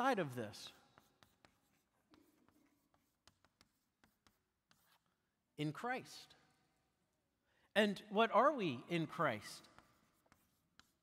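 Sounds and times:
chalk tapping on blackboard: 0:00.0 - 0:05.2, 0:09.4 - 0:11.0
chalk scratch: 0:00.0 - 0:05.4, 0:09.0 - 0:11.0.

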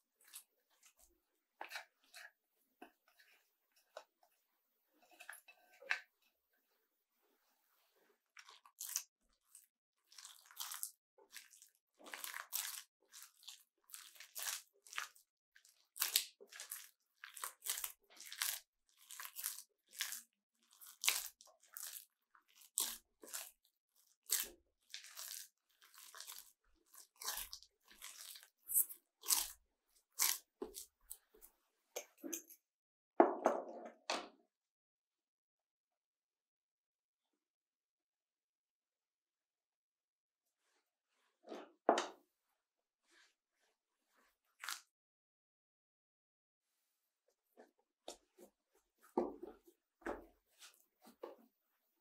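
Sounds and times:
hands squeezing wet dough: 0:00.0 - 0:04.4, 0:07.7 - 0:32.6, 0:43.0 - 0:44.9, 0:47.3 - 0:52.0.

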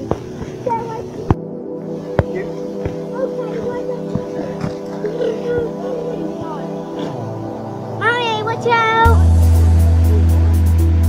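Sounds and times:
background music sustained chord: 0:00.0 - 0:11.0.

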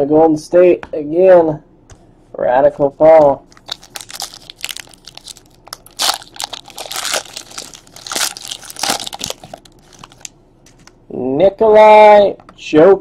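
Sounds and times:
wrapper crinkling and tearing: 0:03.5 - 0:10.3.

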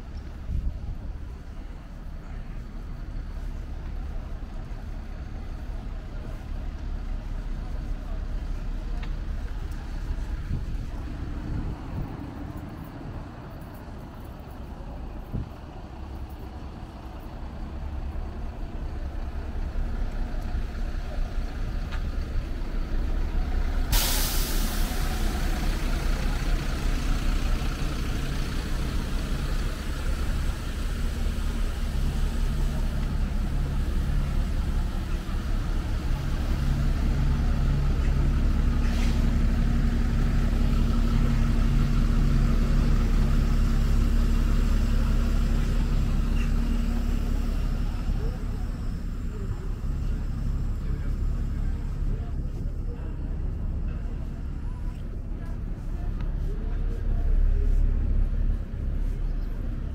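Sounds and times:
bus engines idling: 0:00.0 - 0:59.9
air brakes hissing: 0:23.7 - 0:26.6, 0:28.6 - 0:39.7.

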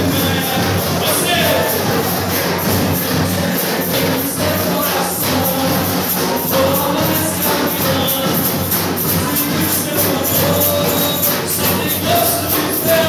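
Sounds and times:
percussion band playing: 0:00.0 - 0:13.0.

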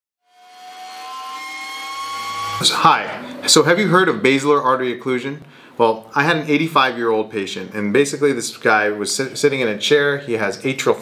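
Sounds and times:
synthesized drone: 0:01.0 - 0:04.1.

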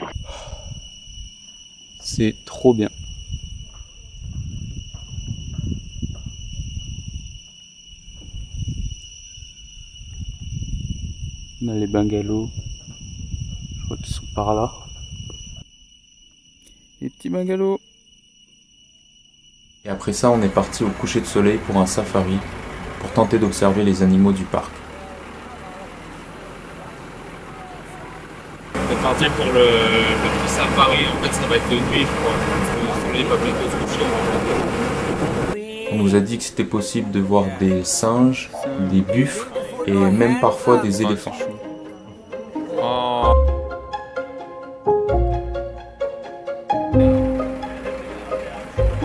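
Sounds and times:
insects droning: 0:00.0 - 0:49.0
low rumble: 0:20.1 - 0:35.6.

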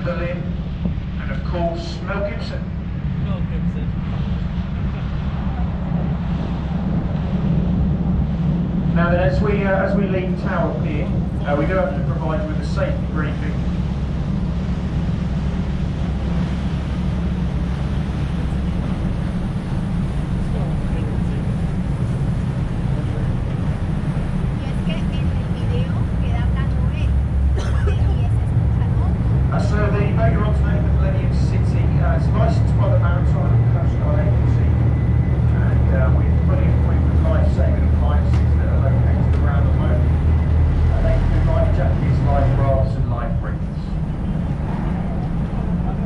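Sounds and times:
people talking: 0:00.0 - 0:00.5, 0:01.2 - 0:04.3, 0:09.0 - 0:13.6, 0:20.4 - 0:21.7, 0:22.8 - 0:23.7, 0:24.6 - 0:40.2, 0:40.9 - 0:44.0
boat engine low rumble: 0:00.0 - 0:46.0.

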